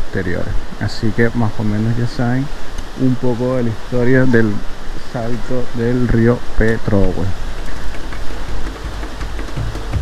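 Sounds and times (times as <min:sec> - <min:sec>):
waterfall rushing through rock gorge: 0:00.0 - 0:10.0
background music: 0:08.4 - 0:10.0.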